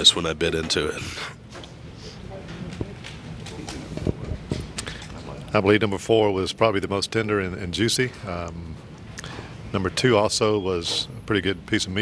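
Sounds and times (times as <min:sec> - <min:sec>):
faint background chatter: 0:00.8 - 0:06.0.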